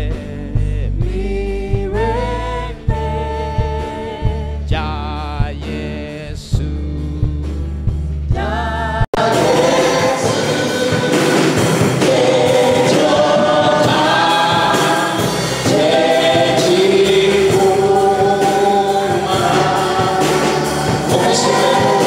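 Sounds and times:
group singing gospel song: 1.0 - 4.5, 8.4 - 22.0.

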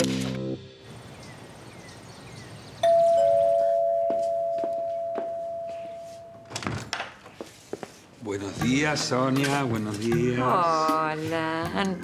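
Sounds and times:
two-note doorbell chime: 2.8 - 6.5.

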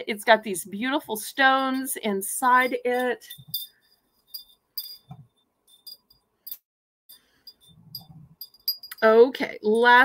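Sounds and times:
wind chime tubes clinking: 1.6 - 10.0.

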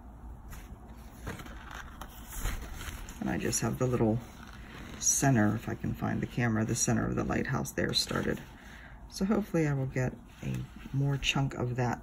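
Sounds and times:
rustling of cloth: 0.4 - 11.8.

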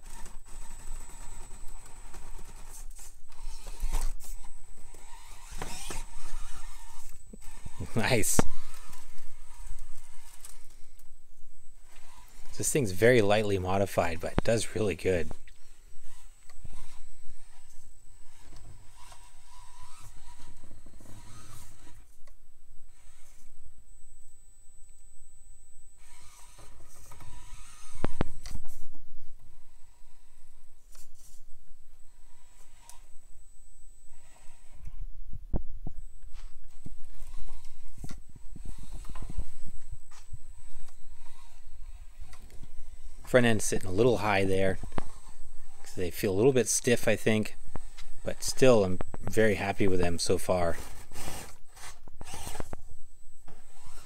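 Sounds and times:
small electric motor whirring: 0.0 - 35.1, 36.0 - 54.0.

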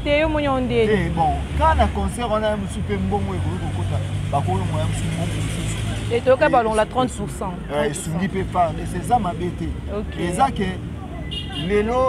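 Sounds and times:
man talking: 0.9 - 10.9, 11.6 - 12.0.

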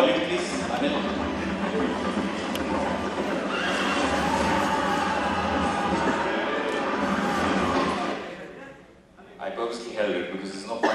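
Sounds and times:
horses whinnying: 2.9 - 8.3.

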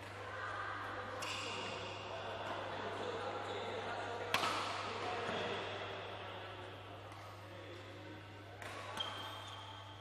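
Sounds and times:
racket striking shuttlecock: 4.3 - 4.7.

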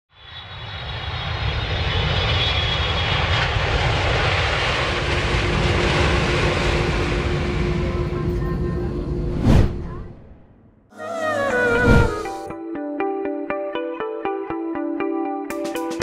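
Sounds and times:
jet engines rushing: 11.0 - 12.5.

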